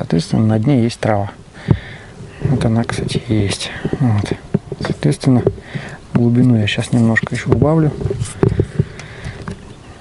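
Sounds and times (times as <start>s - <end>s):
handling noises: 1.6s - 9.8s.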